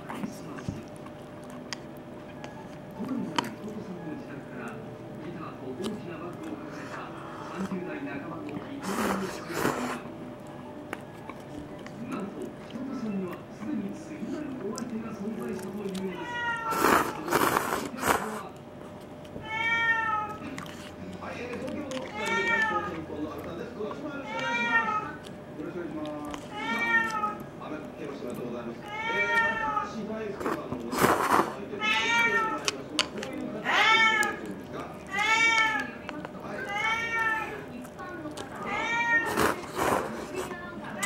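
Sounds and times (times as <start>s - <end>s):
cat meowing: 16.1s - 17.3s, 19.4s - 20.4s, 22.0s - 23.0s, 24.2s - 25.2s, 26.5s - 27.4s, 28.8s - 29.9s, 31.8s - 32.6s, 33.6s - 34.4s, 35.1s - 36.0s, 36.6s - 37.7s, 38.6s - 39.6s.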